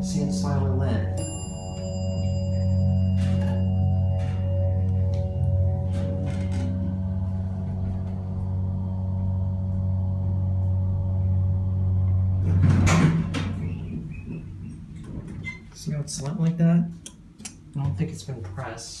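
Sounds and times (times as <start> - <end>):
elevator chime: 0.0 - 8.1
elevator pump motor humming: 0.0 - 15.8.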